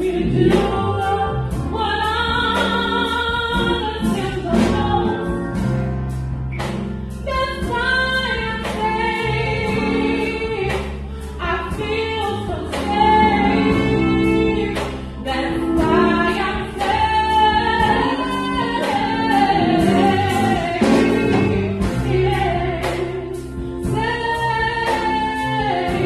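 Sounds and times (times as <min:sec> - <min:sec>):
women singing backing vocals: 0:00.0 - 0:05.2, 0:07.3 - 0:26.0
music with steady beat: 0:00.0 - 0:26.0.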